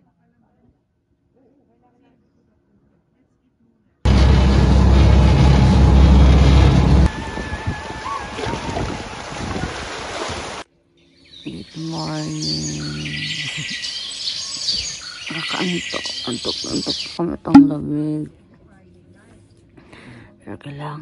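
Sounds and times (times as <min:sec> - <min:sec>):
waves on rocky shore: 0:07.2 - 0:10.6.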